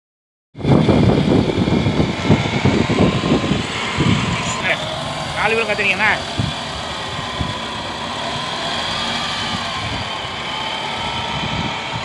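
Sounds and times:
diesel engine driving past: 0:00.6 - 0:12.0.

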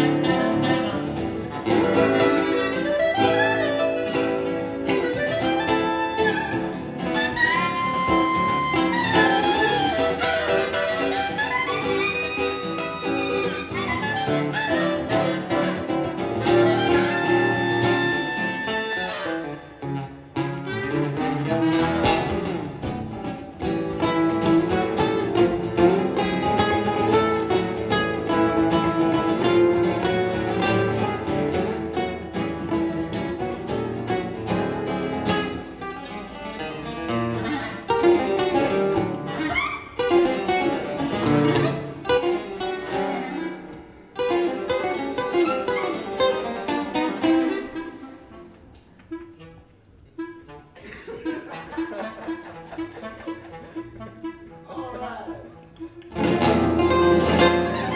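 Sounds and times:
acoustic guitars plucking: 0:00.0 - 0:57.9
sustained woodwind line: 0:01.6 - 0:19.6.

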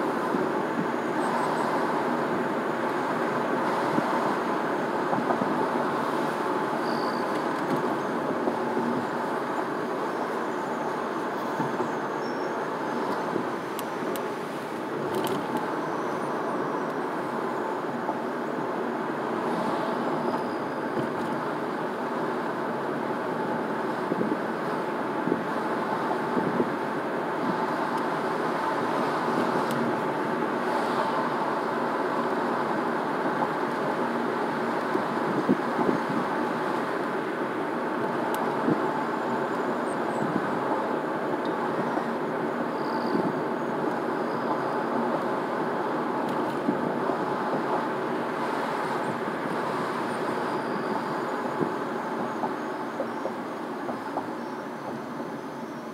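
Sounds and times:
car road and tyre noise: 0:00.0 - 0:55.9.

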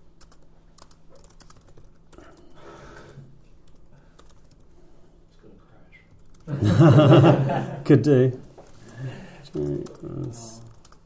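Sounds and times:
computer keyboard typing: 0:00.0 - 0:02.6, 0:03.6 - 0:04.7, 0:06.0 - 0:06.5, 0:08.6 - 0:11.0.

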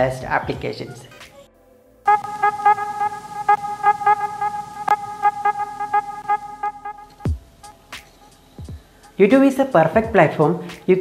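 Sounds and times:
pulsing horn-like tone: 0:02.1 - 0:07.3.

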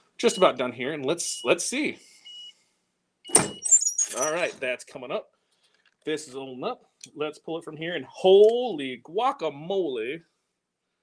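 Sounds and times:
high squeak of platen lifting: 0:03.3 - 0:04.6.

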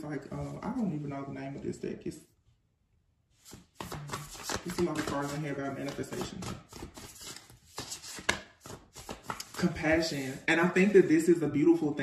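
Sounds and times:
cards being flicked through: 0:03.5 - 0:10.4.

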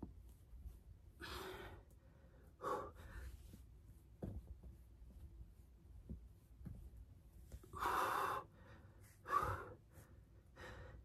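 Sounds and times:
woman breathing hard: 0:01.2 - 0:03.6, 0:07.6 - 0:11.0.

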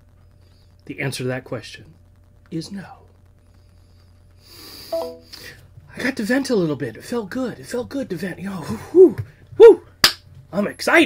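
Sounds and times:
faint room hum: 0:00.0 - 0:11.0
man breathing in: 0:04.4 - 0:05.6.

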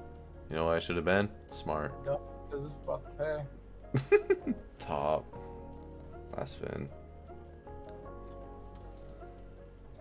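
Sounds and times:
slot game music: 0:00.0 - 0:10.0.

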